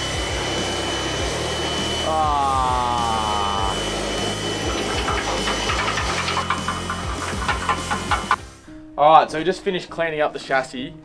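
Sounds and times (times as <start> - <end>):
water jet spraying on metal: 0.0 - 8.4
pressure washer pump hum: 0.0 - 8.5
clicks and spatters: 4.6 - 8.4.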